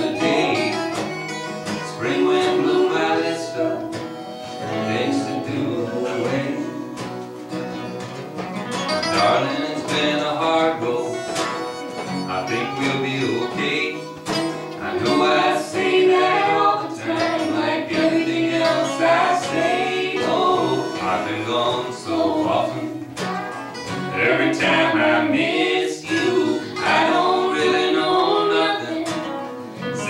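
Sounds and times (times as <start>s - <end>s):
banjo: 0.0s - 30.0s
harmonica: 0.0s - 30.0s
strummed acoustic guitars: 0.0s - 30.0s.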